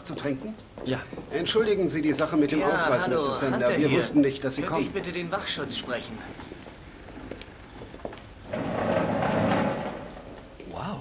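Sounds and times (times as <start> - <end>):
heavy metal door sliding: 8.3 - 10.6.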